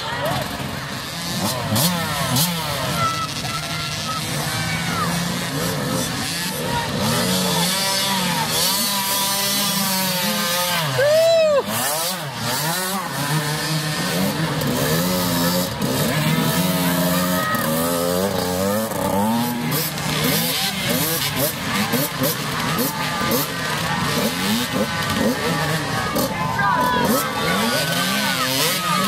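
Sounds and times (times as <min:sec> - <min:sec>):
dirt bike engines revving: 0:00.0 - 0:29.0
spectators' voices: 0:00.0 - 0:29.0.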